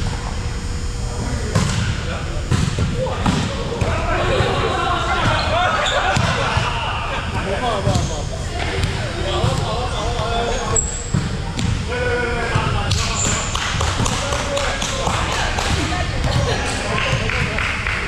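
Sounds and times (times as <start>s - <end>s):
players calling out: 3.0s - 18.0s.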